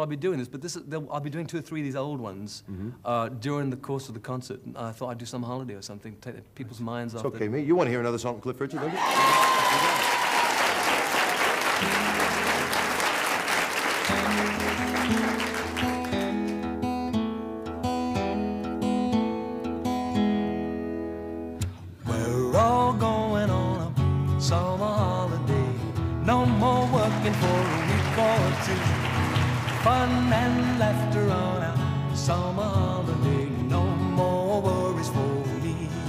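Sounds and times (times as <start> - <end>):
audience applause: 8.8 - 16.6, 26.4 - 31.1
acoustic guitar strumming chords: 11.8 - 13.2, 14.0 - 36.0
man singing: 22.0 - 36.0.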